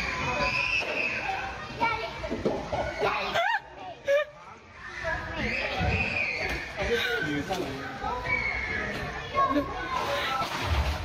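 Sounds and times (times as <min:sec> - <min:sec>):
hubbub of children playing: 0:00.0 - 0:11.0.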